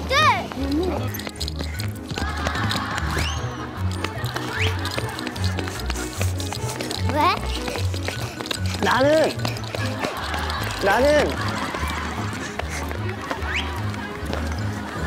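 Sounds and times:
bouncy background music: 0.0 - 15.0.

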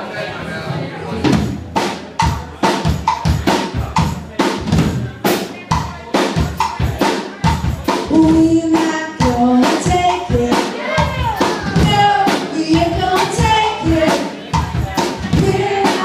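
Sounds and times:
drum kit playing rock beat: 1.2 - 16.0.

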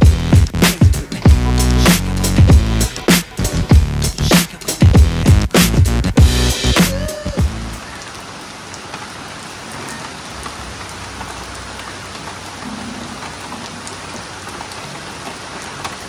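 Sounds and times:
rain on paving: 0.0 - 16.0
raindrop ticks: 7.8 - 16.0.

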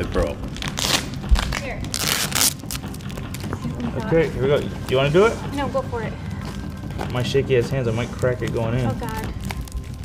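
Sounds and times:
package crinkling: 8.1 - 10.0.

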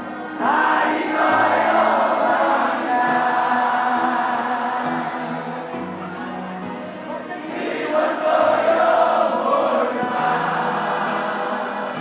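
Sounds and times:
many voices singing together: 0.0 - 12.0.

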